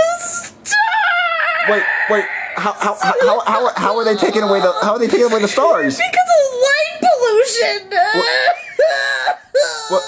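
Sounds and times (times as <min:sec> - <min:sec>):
person talking in a whimpering tone: 0:00.0 - 0:05.9, 0:07.6 - 0:08.6.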